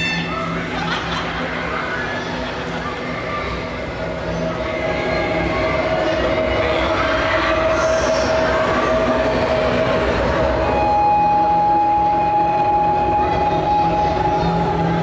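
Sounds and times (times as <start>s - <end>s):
dark ominous drone: 0.0s - 15.0s.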